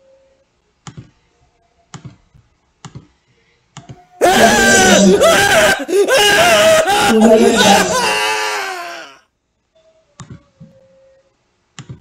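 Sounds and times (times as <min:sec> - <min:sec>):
shouted cartoon voice: 0:04.2 - 0:09.2.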